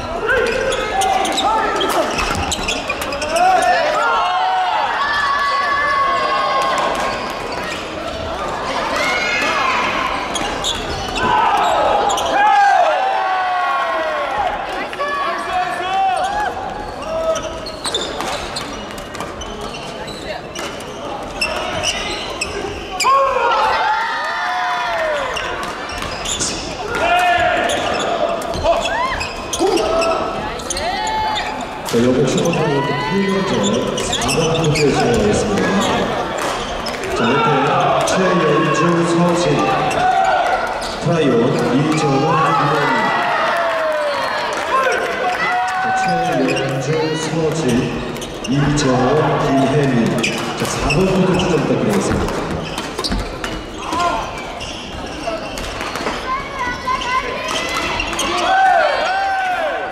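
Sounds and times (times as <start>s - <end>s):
shoes squeaking on wooden floor: 0.4s - 3.9s, 7.0s - 12.4s, 16.0s - 23.2s, 25.1s - 43.1s, 45.7s - 58.6s
players calling out: 19.6s - 59.9s.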